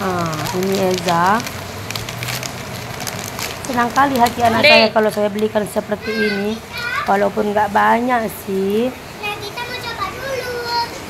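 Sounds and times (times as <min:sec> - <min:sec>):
young children talking: 0:03.7 - 0:11.0.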